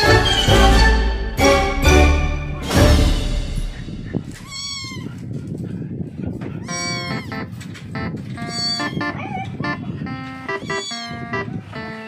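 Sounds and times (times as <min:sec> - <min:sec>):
kittens mewing: 0:04.4 - 0:05.2, 0:06.6 - 0:07.4, 0:08.4 - 0:09.8, 0:10.4 - 0:11.7.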